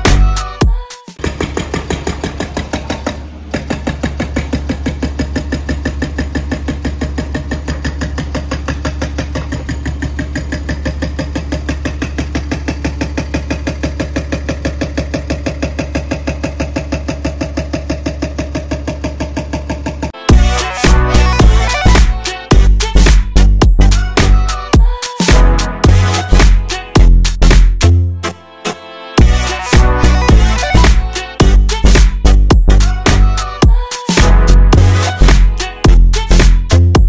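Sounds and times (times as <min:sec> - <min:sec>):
hydraulic breaker pounding rock: 0:01.2 - 0:20.2
excavator engine hum: 0:01.2 - 0:23.1.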